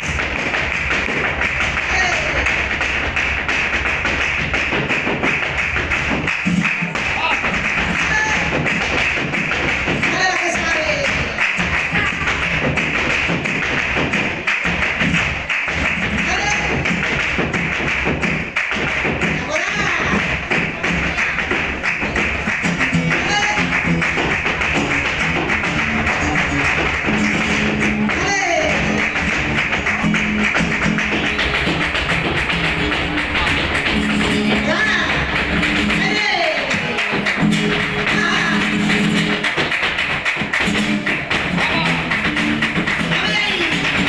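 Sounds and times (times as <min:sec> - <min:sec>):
flamenco footwork taps: 0:00.0 - 0:44.0
rhythmic hand-clapping: 0:00.0 - 0:44.0.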